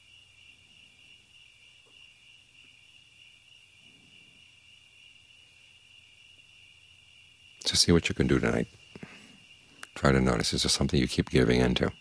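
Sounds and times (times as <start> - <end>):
crickets chirping: 0.0 - 12.0.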